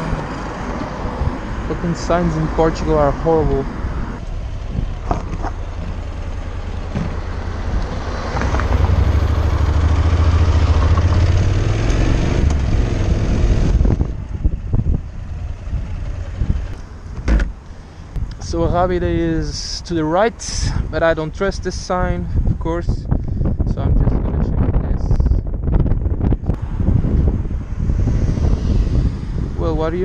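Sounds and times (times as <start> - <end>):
motorcycle engine accelerating: 3.9 - 17.6, 25.4 - 29.6.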